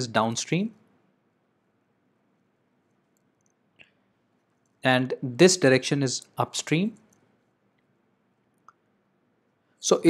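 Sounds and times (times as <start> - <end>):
man speaking: 0.0 - 0.8, 4.8 - 7.1.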